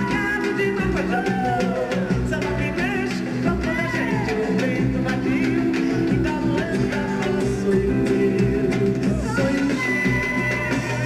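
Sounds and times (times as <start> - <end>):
drum kit beat: 0.0 - 11.0
live band playing samba: 0.0 - 11.0
person singing melody: 0.0 - 11.0.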